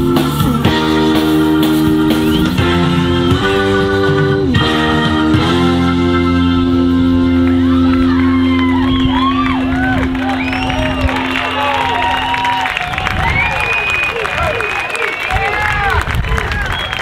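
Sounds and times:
blues band holding final chord: 0.0 - 13.0
audience cheering and whooping: 7.4 - 17.0.

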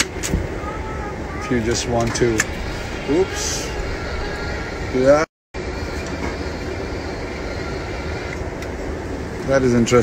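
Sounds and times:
jet cabin low hum: 0.0 - 10.0.

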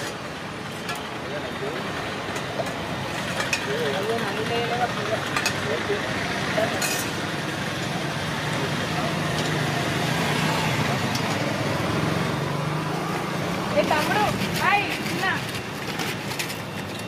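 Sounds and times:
traffic engine hum: 0.0 - 17.0.

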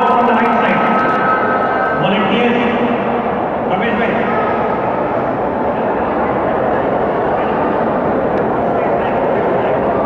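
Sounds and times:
crowd noise in a large hall: 0.0 - 10.0.

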